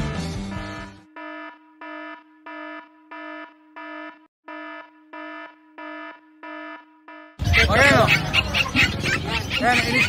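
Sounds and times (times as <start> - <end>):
electronic alarm beeping: 0.5 - 8.0.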